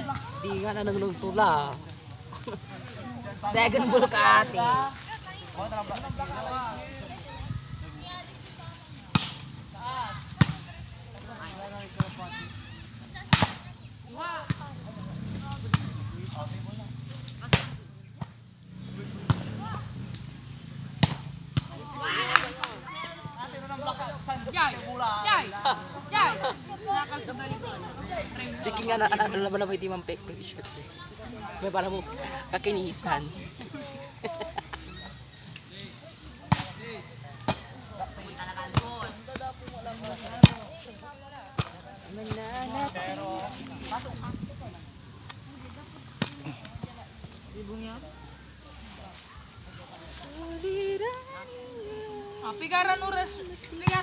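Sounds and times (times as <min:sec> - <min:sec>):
players shouting and chatting: 0:00.0 - 0:54.0
ball struck with sharp slaps: 0:09.1 - 0:09.4, 0:13.3 - 0:13.7, 0:17.4 - 0:18.4, 0:19.2 - 0:20.3, 0:20.9 - 0:22.8, 0:36.5 - 0:36.8, 0:41.5 - 0:42.4.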